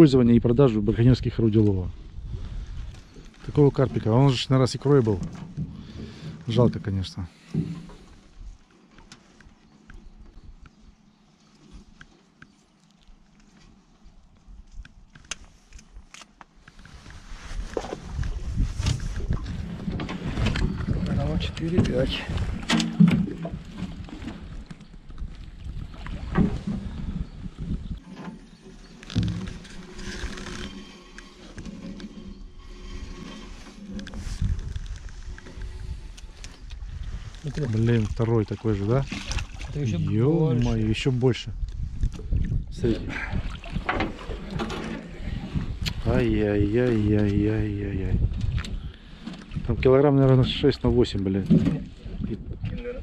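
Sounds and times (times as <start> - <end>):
net and wood scraping metal hull: 3.1 - 9.3, 16.8 - 25.1, 25.8 - 41.5, 42.8 - 52.9
water splashing and dripping: 37.4 - 40.9.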